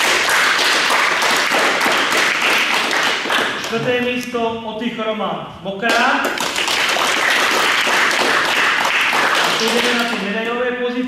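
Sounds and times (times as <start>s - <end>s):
children applauding: 0.0s - 3.7s, 6.4s - 10.2s.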